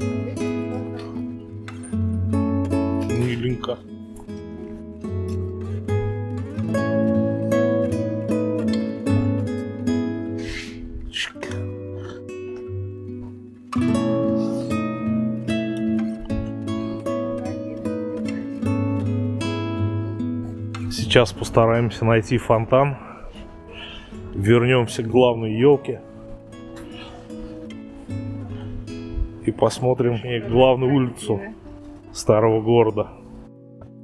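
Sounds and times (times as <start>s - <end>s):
acoustic guitar music: 0.0s - 34.0s.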